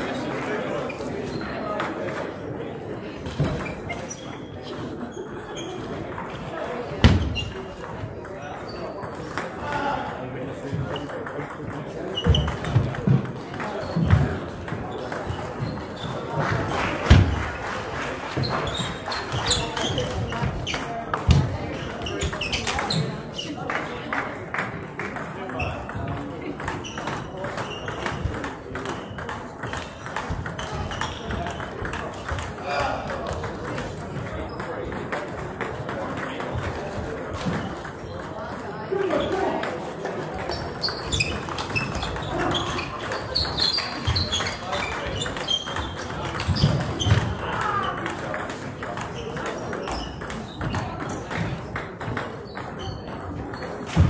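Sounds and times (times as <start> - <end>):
indistinct voices chattering: 0.0 - 54.0
table tennis balls clicking: 10.8 - 17.4, 18.3 - 23.6, 24.6 - 38.7, 39.6 - 54.0.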